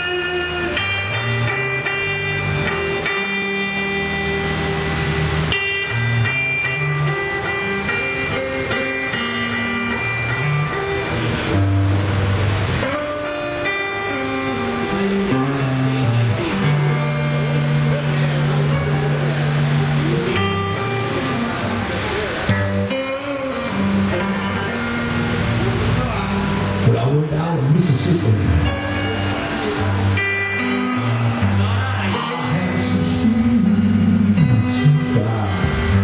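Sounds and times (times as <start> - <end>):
blues band playing: 0.0 - 36.0
electric bass notes: 0.0 - 36.0
electric guitar lines: 0.0 - 36.0.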